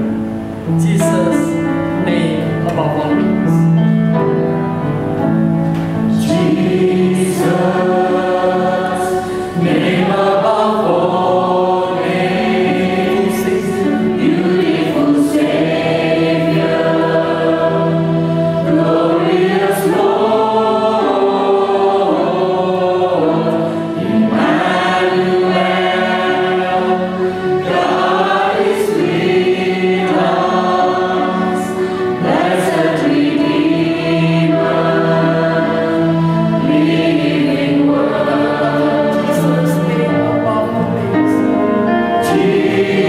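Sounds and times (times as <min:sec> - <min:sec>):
congregation singing a hymn: 0:00.0 - 0:43.0
piano accompaniment: 0:00.0 - 0:43.0.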